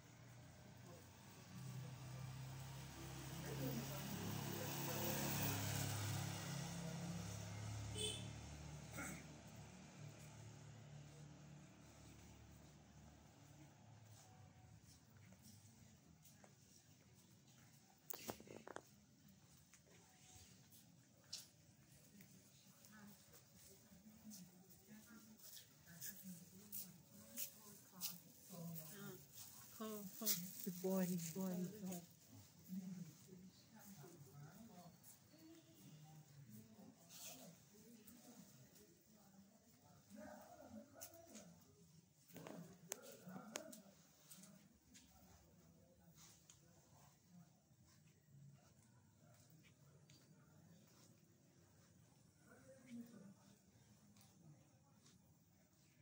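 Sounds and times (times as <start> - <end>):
scooter engine passing by: 0.1 - 14.6
people talking: 0.7 - 8.2, 10.9 - 41.7.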